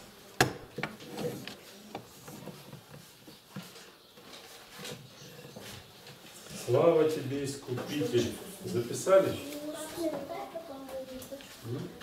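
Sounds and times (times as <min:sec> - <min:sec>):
faint rustling of writing: 0:01.0 - 0:12.0.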